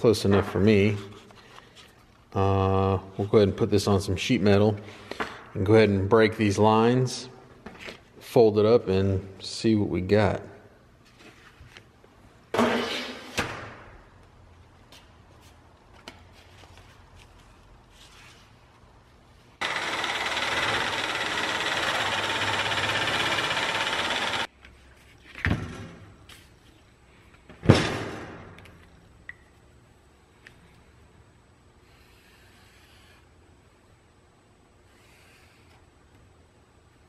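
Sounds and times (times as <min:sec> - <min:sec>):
electric metal shear cutting: 0:19.6 - 0:24.5.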